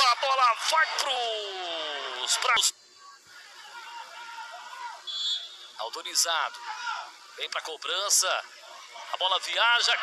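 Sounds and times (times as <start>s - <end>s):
faint voices: 0.0s - 10.0s
referee's whistle blast: 5.0s - 5.8s.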